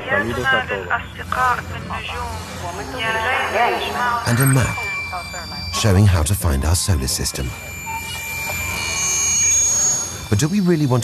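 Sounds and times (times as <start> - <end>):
synthesized ambient drone: 0.0 - 11.0.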